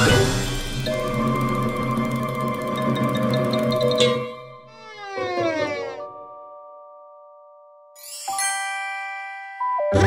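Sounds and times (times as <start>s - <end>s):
bell-like chime music: 7.9s - 10.0s.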